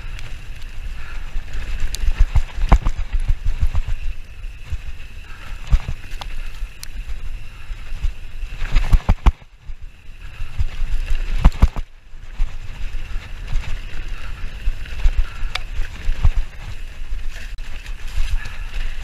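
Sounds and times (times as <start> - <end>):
mountain bike clattering: 0.0 - 19.0.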